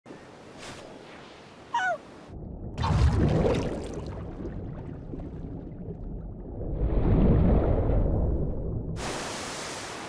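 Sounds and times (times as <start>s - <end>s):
loud water splash: 2.8s - 5.7s, 9.0s - 10.0s.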